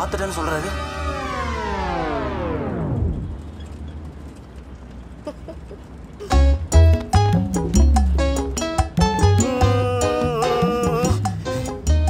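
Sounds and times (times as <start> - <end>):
descending pitched comic effect: 0.3 - 3.4, 9.1 - 11.3.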